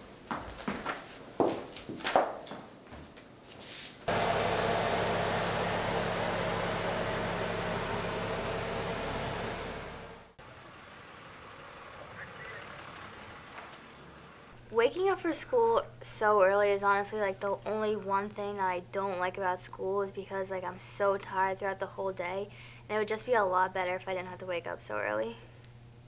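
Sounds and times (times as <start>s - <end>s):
low background hum: 2.8s - 26.0s
road noise: 4.1s - 14.6s
bus engine droning: 4.1s - 14.8s.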